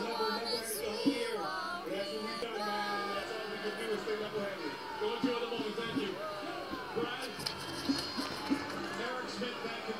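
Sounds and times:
voices over music: 0.0s - 9.9s.

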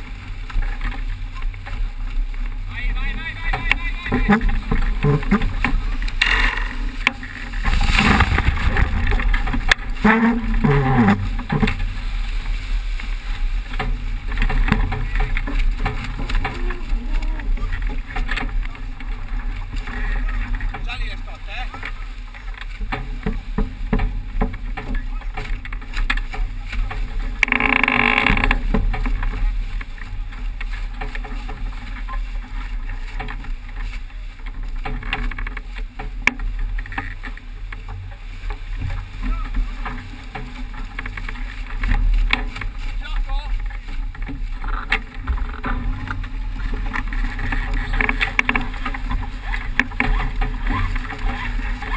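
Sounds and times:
water rushing along hull: 0.0s - 51.9s
wind rumble on microphone: 0.0s - 51.9s.

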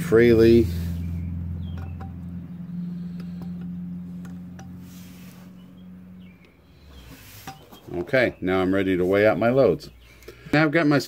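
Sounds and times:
steady low hum: 0.0s - 10.6s.

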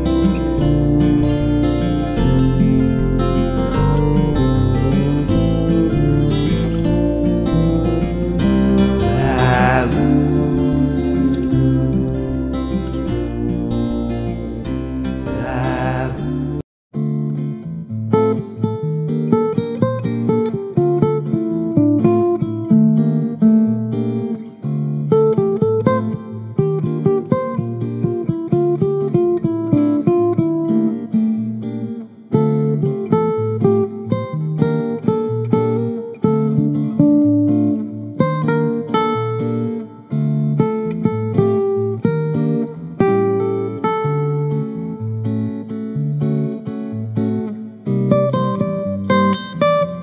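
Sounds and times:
acoustic guitar plucked notes: 0.0s - 50.0s.

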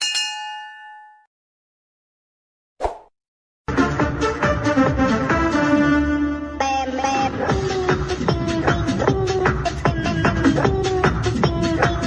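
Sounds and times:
bell-like notification ding: 0.0s - 1.3s
music: 3.7s - 12.0s.

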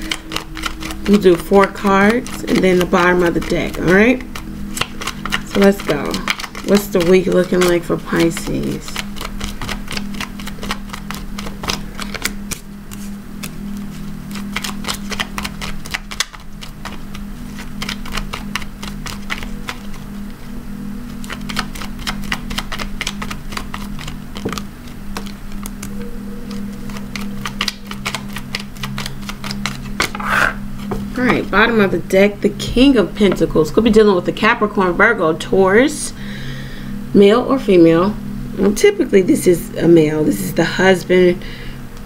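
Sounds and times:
cards being shuffled: 0.0s - 20.5s, 21.1s - 31.6s
steady low hum: 0.0s - 42.0s.

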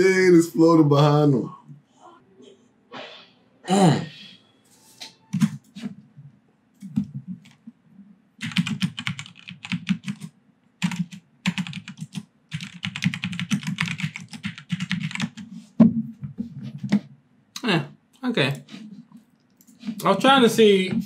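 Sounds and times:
computer keyboard typing: 8.4s - 15.5s.

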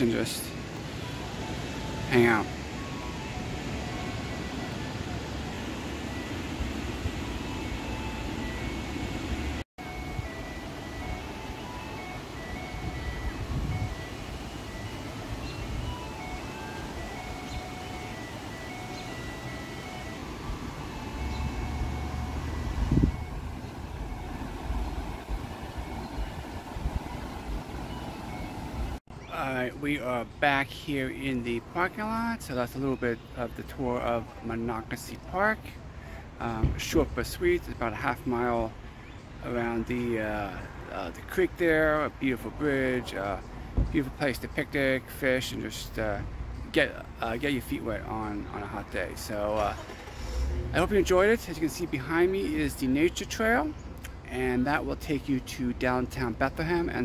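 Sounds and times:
creek water rushing: 0.0s - 29.0s
ice cream truck chime tune: 0.0s - 53.8s, 54.4s - 57.0s
wind: 0.0s - 57.0s.

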